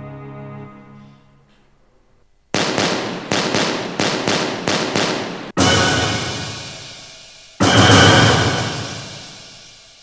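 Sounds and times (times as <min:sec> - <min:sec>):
background music: 0:00.0 - 0:01.5, 0:05.6 - 0:09.9
rapid gunshots with ringing tail: 0:02.5 - 0:10.0.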